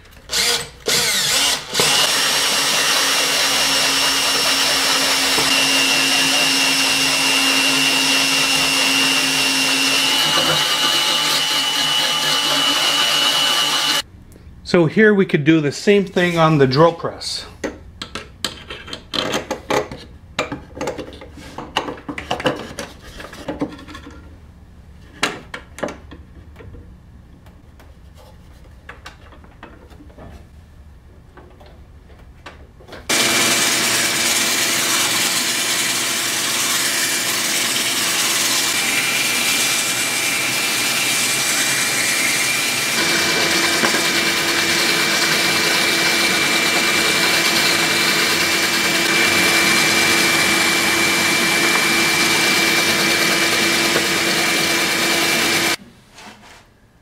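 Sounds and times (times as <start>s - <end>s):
drill press whirring: 0.2s - 14.0s, 33.1s - 55.8s
dust extraction vacuum running: 1.2s - 14.0s, 33.1s - 55.8s.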